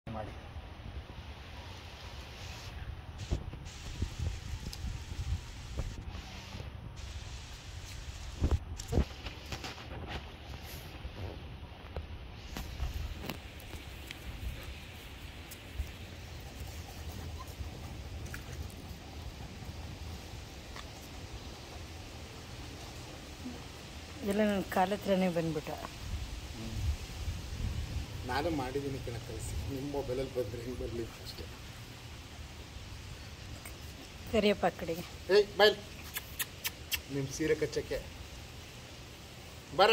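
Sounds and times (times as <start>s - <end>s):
wind noise on microphone: 2.6s - 15.0s, 25.9s - 30.1s.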